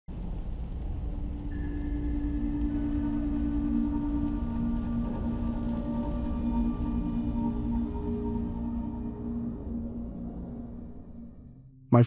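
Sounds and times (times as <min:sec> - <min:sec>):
deep rumble: 0:00.1 - 0:11.5
dark ambient music: 0:00.1 - 0:12.0
low drone tones: 0:00.3 - 0:11.7.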